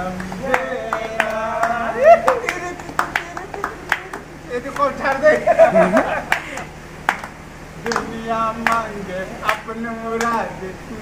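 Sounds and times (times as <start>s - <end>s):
men clapping in time: 0.0s - 10.6s.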